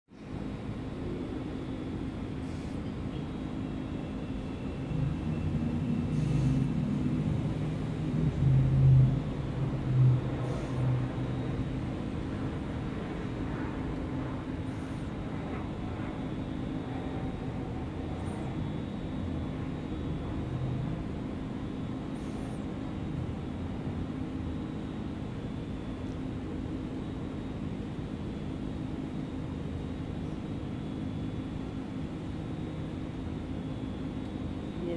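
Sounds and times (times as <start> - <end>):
low mechanical hum: 0.1 - 34.9
street traffic: 0.1 - 34.9
passing vehicle rumble: 4.8 - 14.4.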